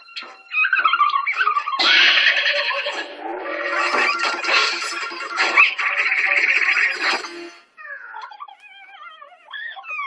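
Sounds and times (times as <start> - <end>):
wavering pitched voice: 0.0 - 10.0
cartoon music: 0.1 - 8.4
cartoon cat crying: 7.8 - 10.0.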